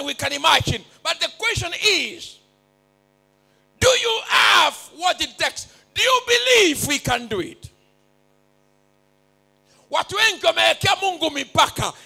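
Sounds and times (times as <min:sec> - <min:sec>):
man's amplified speech: 0:00.0 - 0:02.5, 0:03.8 - 0:07.8, 0:09.9 - 0:12.0
faint electrical mains hum: 0:00.0 - 0:12.0.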